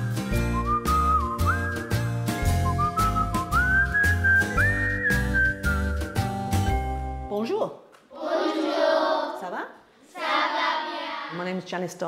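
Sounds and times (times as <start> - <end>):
upbeat theme music: 0.0 - 7.4.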